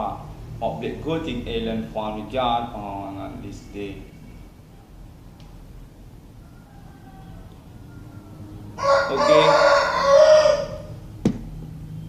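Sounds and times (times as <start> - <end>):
rooster crowing: 6.3 - 11.2.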